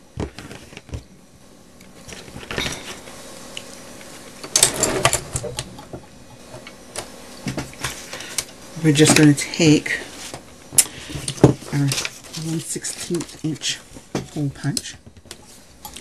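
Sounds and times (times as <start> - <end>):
paper and tools handled: 9.9 - 14.5.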